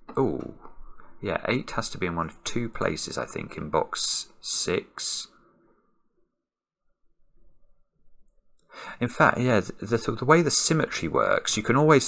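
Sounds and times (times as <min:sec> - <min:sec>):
man speaking: 0:00.1 - 0:00.6, 0:01.2 - 0:05.4, 0:08.9 - 0:12.0
man breathing: 0:08.7 - 0:09.0.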